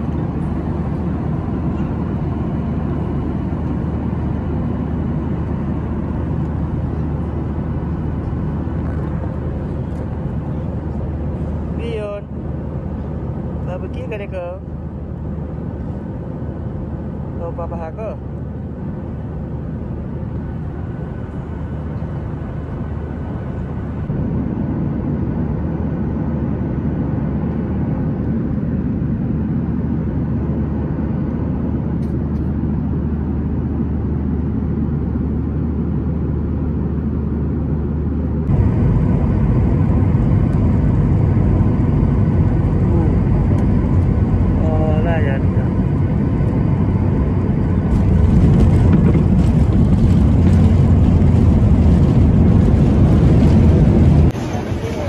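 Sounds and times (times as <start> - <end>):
jet rumbling and rattling on runway: 0.0 - 36.1, 36.8 - 55.0
jet engines roaring in cabin: 0.0 - 55.0.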